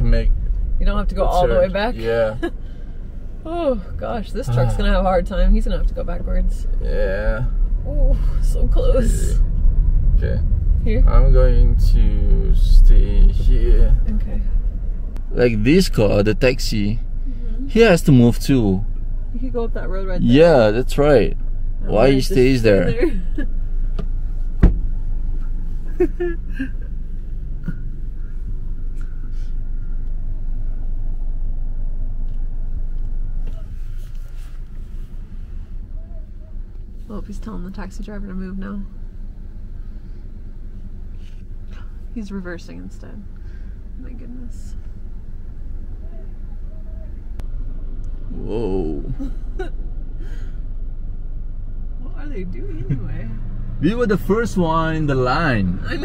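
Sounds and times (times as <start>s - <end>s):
car idling rumble: 0.0s - 56.0s.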